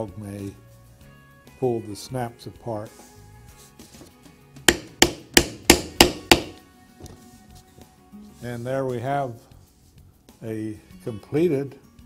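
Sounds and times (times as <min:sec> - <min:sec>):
mallet striking rivet setter: 0:04.7 - 0:06.6.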